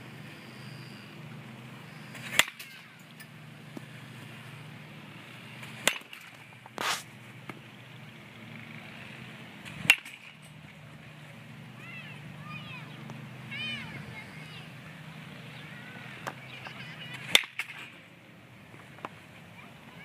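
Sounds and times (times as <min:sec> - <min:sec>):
baseball bat cracks: 0:02.2 - 0:02.9, 0:05.7 - 0:07.1, 0:09.7 - 0:10.4, 0:17.2 - 0:18.0.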